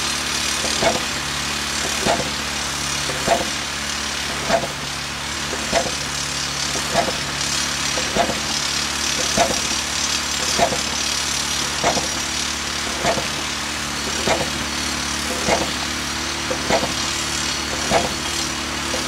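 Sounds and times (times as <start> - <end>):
rock drill pulsing: 0.0 - 19.0
rock drill running with hiss: 0.0 - 19.0.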